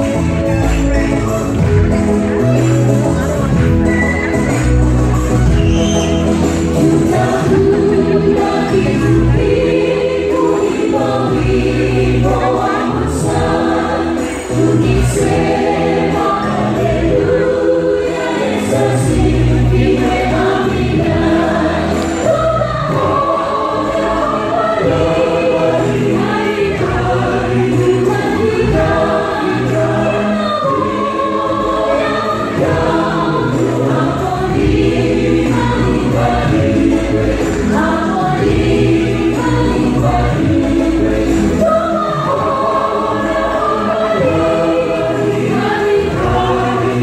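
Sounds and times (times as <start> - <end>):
gospel choir singing: 0.0 - 2.5, 4.0 - 47.0
instrumental backing with bass: 0.0 - 47.0.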